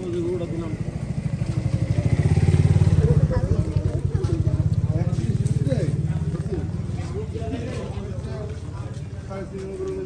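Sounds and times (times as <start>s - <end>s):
engine running: 0.0s - 8.6s.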